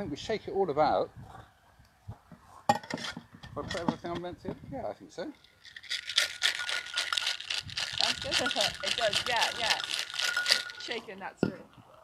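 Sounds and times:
cocktail shaker clink: 5.4s - 11.6s.

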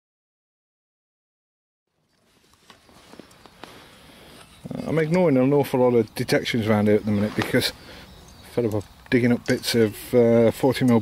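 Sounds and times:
faint outdoor background noise: 1.9s - 11.0s
light clicks and knocks: 2.5s - 11.0s.

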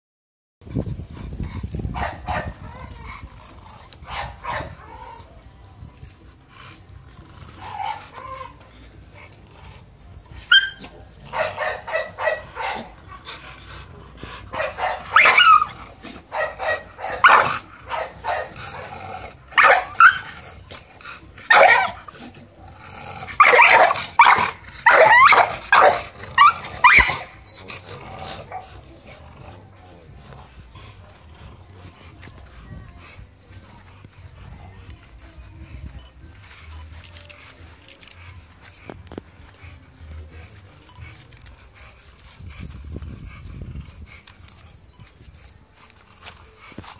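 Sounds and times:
dogs barking loudly: 1.8s - 3.0s, 3.9s - 5.1s, 10.4s - 13.3s, 14.3s - 29.6s.

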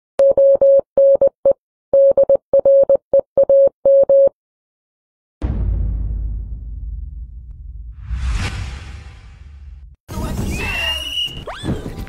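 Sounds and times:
deep boom with whoosh: 5.4s - 10.0s.

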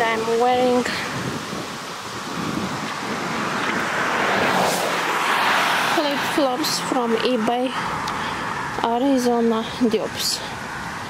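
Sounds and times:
outdoor rushing noise: 0.7s - 9.0s.

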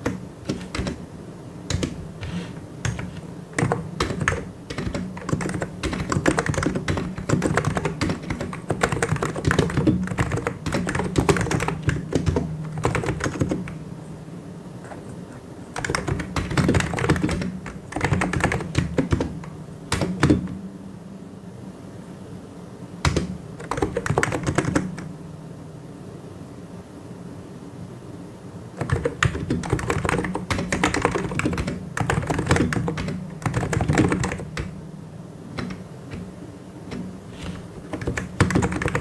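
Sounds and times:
typing on mechanical keyboard: 0.0s - 1.0s, 1.7s - 13.8s, 15.7s - 20.5s, 23.0s - 25.1s, 28.8s - 34.7s, 36.9s - 39.0s.

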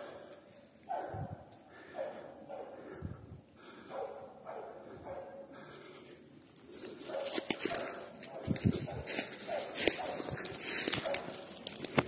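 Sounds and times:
dog barking: 0.8s - 3.0s, 3.8s - 5.6s, 7.0s - 11.5s
brush and twigs snapping: 6.4s - 12.0s.

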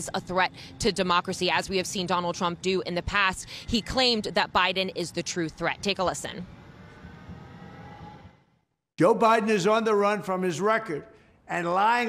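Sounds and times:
city street background hum: 0.0s - 10.6s.

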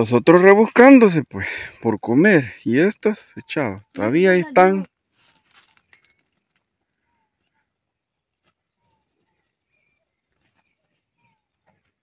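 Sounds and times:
bird chirps: 2.9s - 12.0s
faint rustles: 5.0s - 12.0s.

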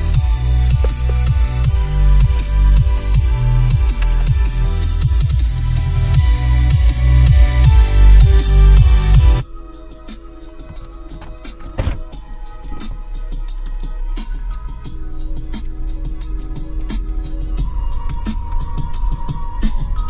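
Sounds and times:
lo-fi music on car stereo: 0.0s - 20.0s
loud electronic music: 0.0s - 20.0s.

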